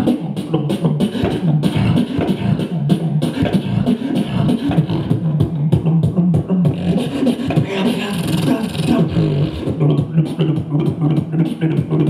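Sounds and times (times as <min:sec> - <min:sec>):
beatboxing mouth percussion: 0:00.0 - 0:12.0
hummed bass line: 0:00.0 - 0:12.0.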